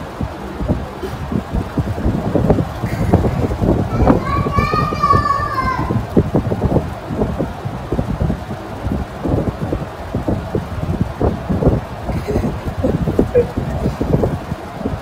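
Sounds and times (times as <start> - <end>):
low rumbling and crackling: 0.0 - 15.0.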